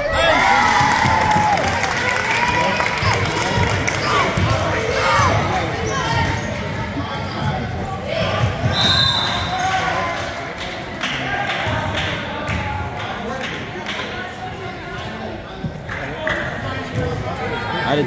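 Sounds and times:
spectators' voices and shouts: 0.0s - 18.0s.

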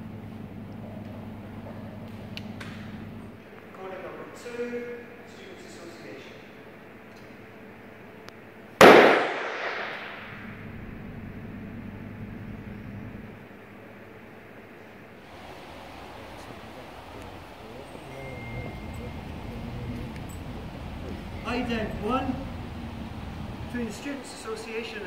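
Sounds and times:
room reverberation: 8.8s - 10.9s.

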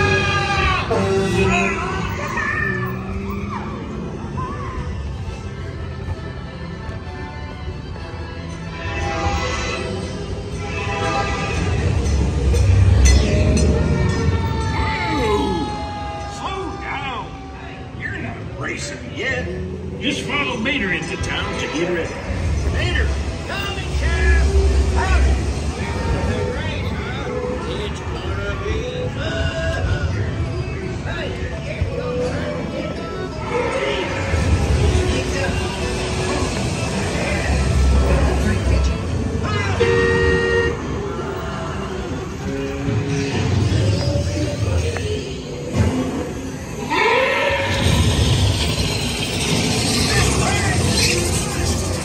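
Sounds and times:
ride vehicle rumbling on track: 0.0s - 52.0s.

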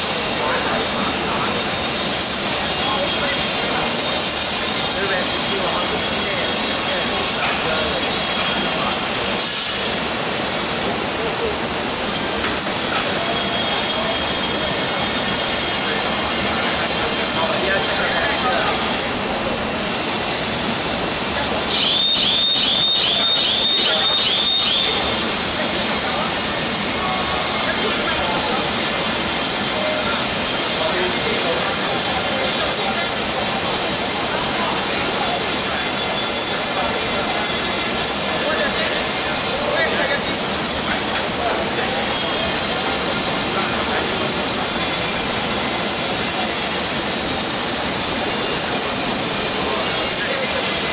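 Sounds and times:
furnace and exhaust fans roaring: 0.0s - 50.9s
thin high whines: 0.0s - 50.9s.

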